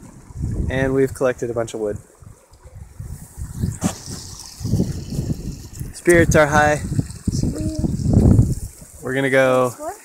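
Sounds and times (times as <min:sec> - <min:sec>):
wind rumble on microphone: 0:00.0 - 0:09.4.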